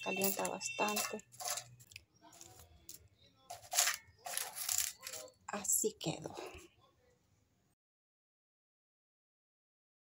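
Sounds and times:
wax paper crinkling: 0.0s - 5.4s.

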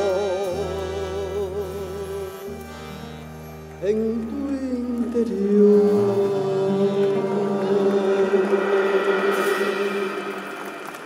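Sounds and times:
person singing: 0.0s - 2.5s, 3.8s - 10.9s
button accordion chords: 0.0s - 10.4s.

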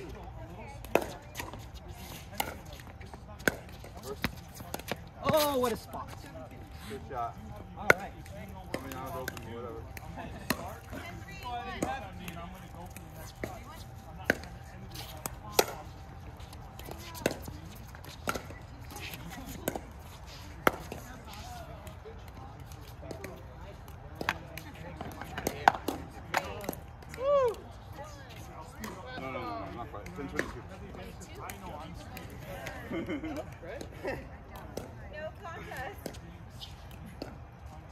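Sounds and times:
faint voices talking: 0.0s - 37.9s.

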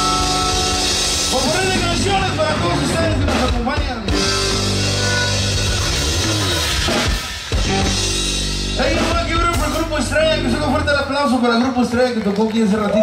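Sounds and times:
button accordion: 0.0s - 1.9s, 4.1s - 9.2s
drum kit: 0.0s - 12.0s
guitar: 0.0s - 13.0s.

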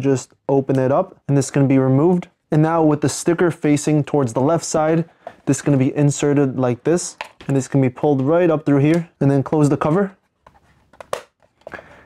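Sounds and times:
plastic cover clicking shut: 10.9s - 11.8s.

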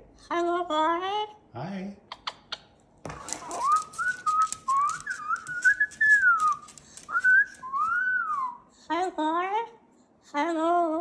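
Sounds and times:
whistling gliding notes: 3.6s - 8.6s.

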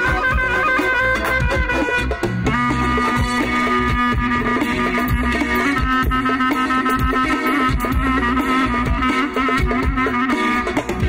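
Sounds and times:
live folk dance music: 0.0s - 11.0s.

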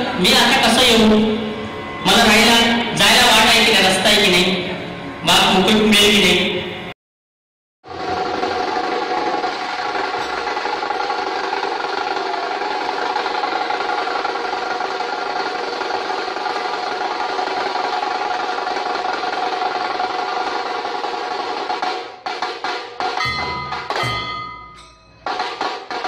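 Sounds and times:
ambient music of held tones: 0.0s - 6.8s, 23.2s - 25.7s.

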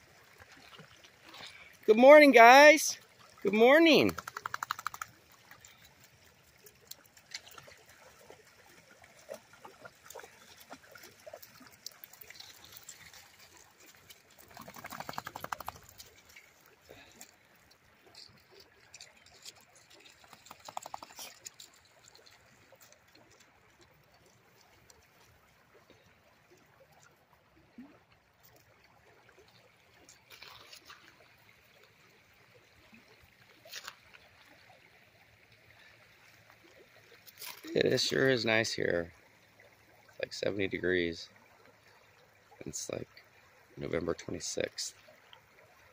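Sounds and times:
water trickling: 0.0s - 45.9s.

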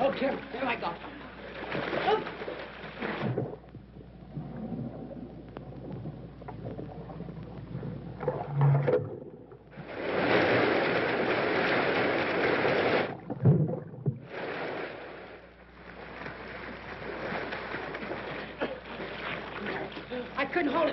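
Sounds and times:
muffled underwater sounds: 0.0s - 20.9s
splash into water: 1.6s - 3.6s, 9.8s - 15.2s
water rushing out of drain: 4.3s - 15.4s.

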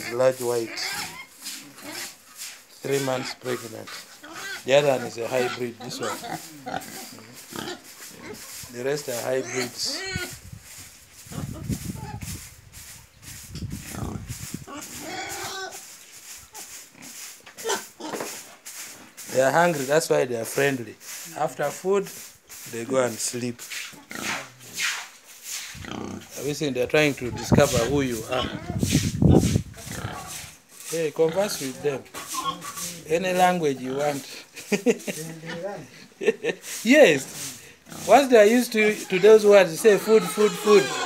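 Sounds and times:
pigs grunting: 0.0s - 2.2s, 2.8s - 10.4s, 13.8s - 15.8s, 16.9s - 18.2s, 24.0s - 24.8s, 25.8s - 36.2s, 37.1s - 41.0s.

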